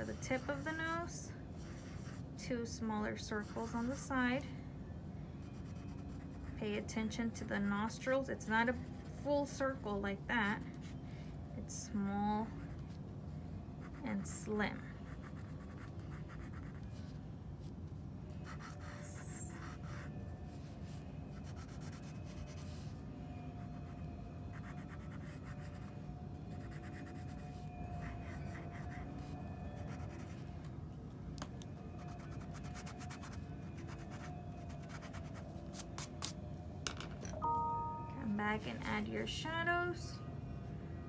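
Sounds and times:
low background hum: 0:00.0 - 0:41.0
pencil scratching on paper: 0:01.6 - 0:02.2, 0:15.0 - 0:17.0, 0:28.0 - 0:30.4.

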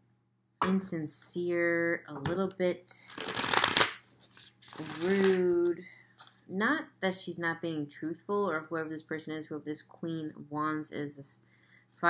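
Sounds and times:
cards being riffle-shuffled: 0:03.1 - 0:05.5.

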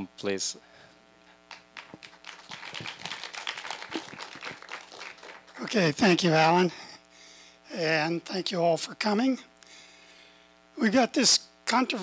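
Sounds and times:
audience applauding: 0:01.5 - 0:06.0.

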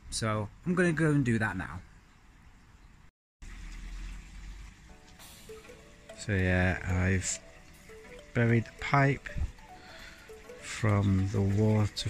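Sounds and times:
soft background music: 0:04.4 - 0:12.0.

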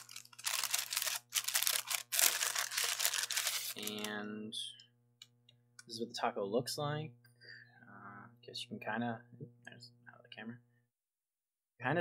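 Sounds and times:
paper bag rustling: 0:00.0 - 0:04.1.

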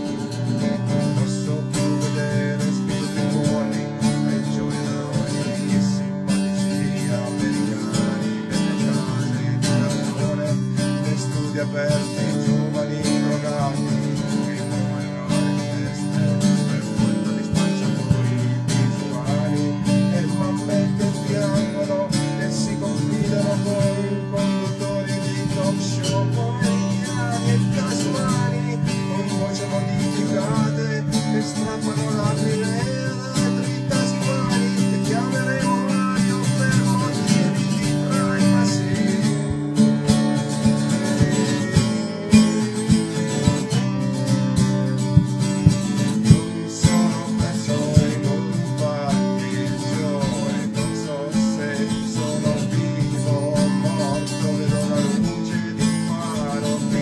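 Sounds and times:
guitar strumming chords: 0:00.0 - 0:57.0.

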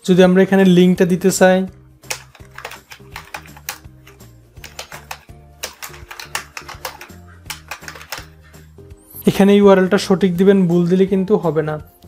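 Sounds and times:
soft background music: 0:00.0 - 0:12.0
typing on keyboard: 0:02.0 - 0:08.4.

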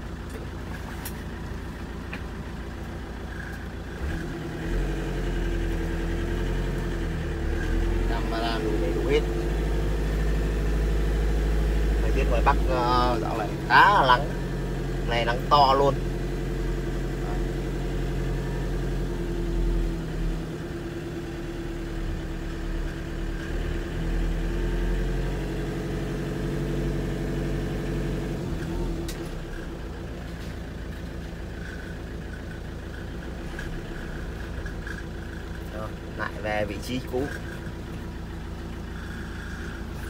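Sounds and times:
diesel van engine running: 0:00.0 - 0:40.0.

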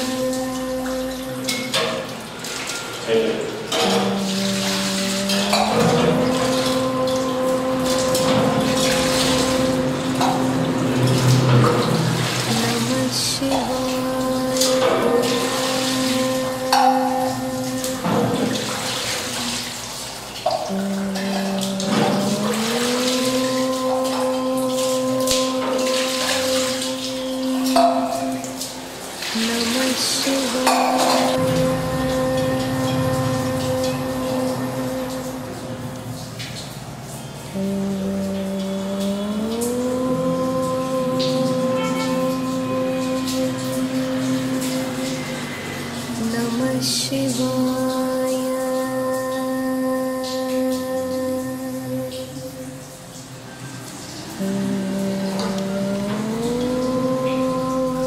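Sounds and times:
devotional chant: 0:00.0 - 0:58.0
water splashing on stone: 0:00.0 - 0:58.0.

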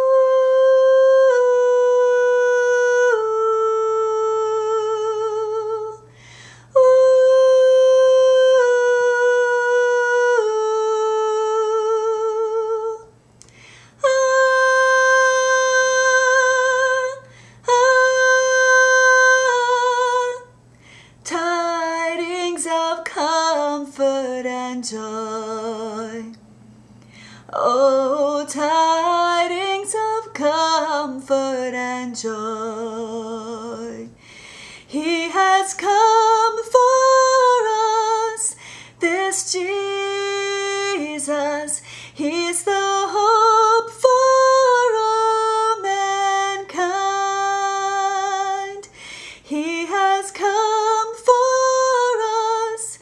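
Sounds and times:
soprano singing with vibrato: 0:00.0 - 0:06.1, 0:06.7 - 0:13.2, 0:14.0 - 0:20.6, 0:21.2 - 0:26.4, 0:27.5 - 0:34.2, 0:34.9 - 0:53.0.

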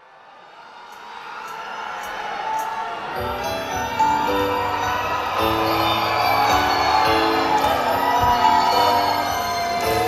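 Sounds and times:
concert crowd noise: 0:00.0 - 0:10.0
stage music: 0:01.6 - 0:10.0.

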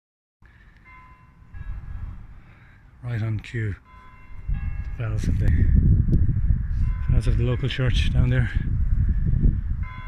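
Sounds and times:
church bells ringing: 0:00.5 - 0:05.8, 0:06.7 - 0:08.6, 0:09.8 - 0:10.0
wind rumbling on microphone: 0:01.4 - 0:02.5, 0:03.3 - 0:10.0.

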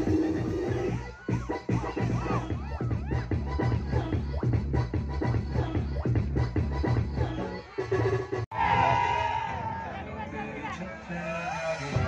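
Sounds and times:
electronic dance music: 0:00.0 - 0:08.5, 0:10.1 - 0:12.0.

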